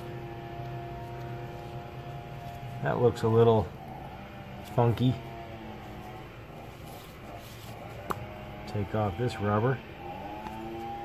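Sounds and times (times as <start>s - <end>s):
steady low hum: 0.0s - 11.0s
person speaking: 4.6s - 6.2s.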